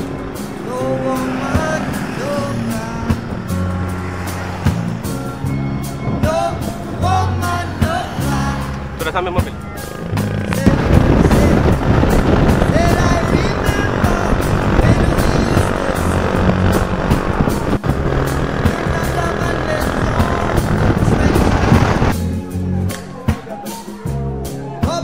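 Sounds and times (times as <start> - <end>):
motorcycle engine: 0.0 - 22.2
wind noise on microphone: 0.0 - 22.9
faint song with singing: 5.4 - 16.2, 18.6 - 25.0.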